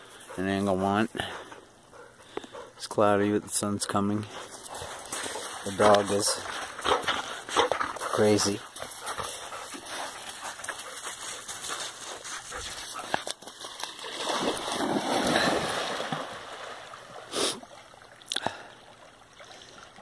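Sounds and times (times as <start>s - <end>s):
dog splashing in water: 12.8s - 17.3s.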